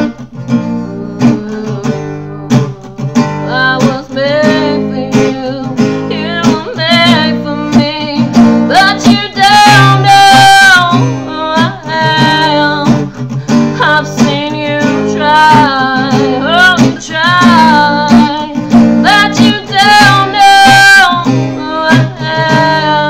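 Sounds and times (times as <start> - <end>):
strummed acoustic guitar: 0.0 - 23.0
woman singing: 0.0 - 23.0.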